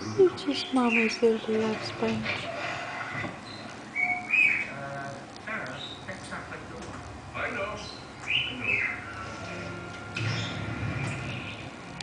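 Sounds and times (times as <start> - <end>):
parrot chirping call: 3.4 - 4.8.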